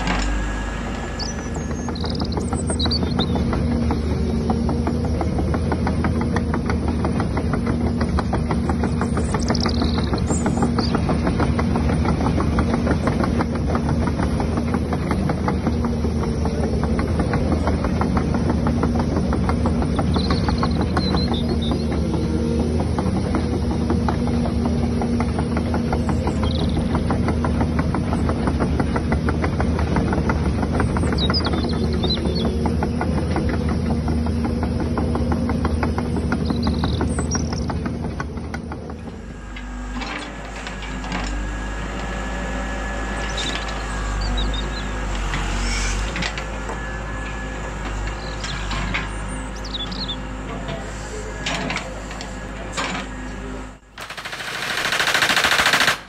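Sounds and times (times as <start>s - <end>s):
electric motor hum: 0.0s - 20.9s, 53.2s - 56.0s
toy excavator ticking whir: 54.0s - 56.0s.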